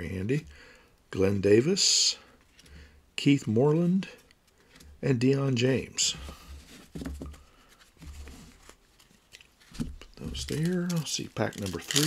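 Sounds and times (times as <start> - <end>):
cards sliding: 6.3 - 12.0.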